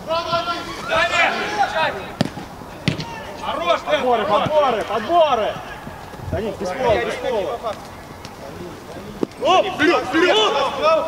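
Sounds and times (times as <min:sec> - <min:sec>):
players shouting: 0:00.0 - 0:11.0
football being kicked: 0:02.2 - 0:03.1, 0:04.2 - 0:04.9.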